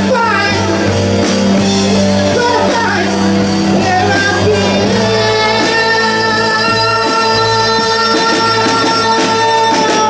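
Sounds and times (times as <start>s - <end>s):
rock band playing: 0.0s - 10.0s.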